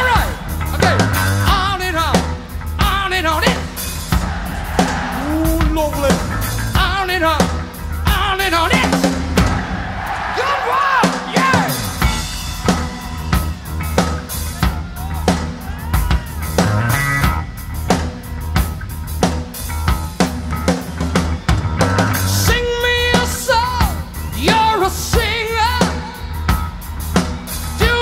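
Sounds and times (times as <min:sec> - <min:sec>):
drum kit kick and snare: 0:00.0 - 0:28.0
heavy metal band playing: 0:00.0 - 0:28.0.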